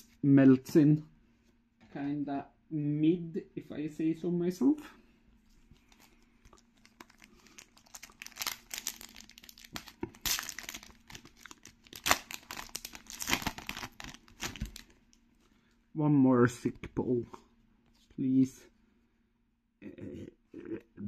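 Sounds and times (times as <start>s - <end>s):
foil wrapper crinkling and tearing: 5.8s - 15.0s.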